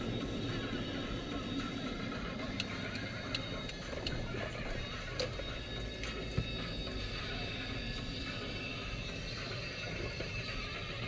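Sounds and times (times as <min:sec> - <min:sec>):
car rumble inside cabin: 0:00.0 - 0:11.0
faint high wavering tones: 0:00.0 - 0:11.0.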